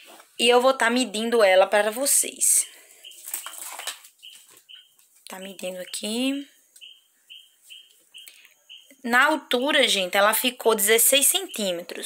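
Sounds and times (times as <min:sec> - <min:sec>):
faint high chirps: 0:02.9 - 0:09.8, 0:11.1 - 0:12.0
cloth rustling: 0:03.0 - 0:05.3.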